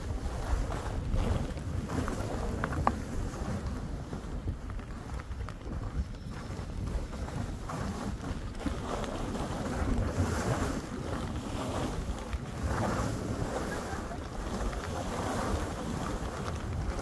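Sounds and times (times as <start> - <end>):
skis sliding through powder snow: 0.0 - 17.0
wind buffeting microphone: 0.0 - 17.0.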